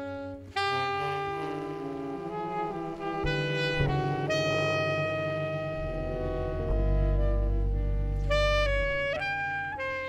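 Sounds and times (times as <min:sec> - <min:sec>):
saxophones and horns holding chords: 0:00.0 - 0:10.0
low bass note: 0:03.8 - 0:09.4.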